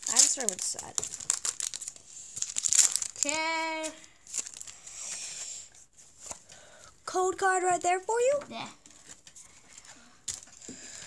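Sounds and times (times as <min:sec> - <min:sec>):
trading cards being handled: 0:08.8 - 0:10.7.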